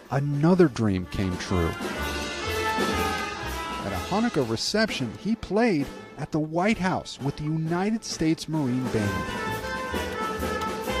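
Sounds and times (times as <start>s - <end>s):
drum-kit beat: 0.1s - 11.0s
saxophone: 1.0s - 6.2s, 8.6s - 11.0s
violin: 6.8s - 11.0s.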